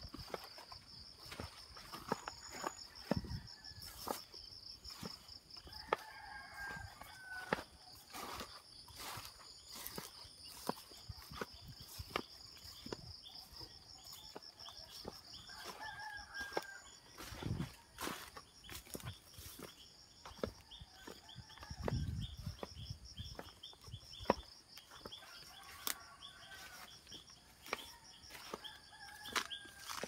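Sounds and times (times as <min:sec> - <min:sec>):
rooster crowing: 0:01.9 - 0:04.3, 0:04.9 - 0:09.2, 0:13.5 - 0:18.4, 0:20.3 - 0:22.7, 0:24.8 - 0:30.0
footsteps through dry leaves: 0:06.1 - 0:12.8, 0:27.6 - 0:30.0.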